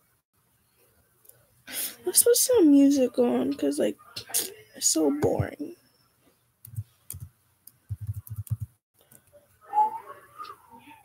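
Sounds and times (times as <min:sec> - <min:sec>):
laptop keys typing: 0:06.7 - 0:07.3, 0:07.9 - 0:09.3.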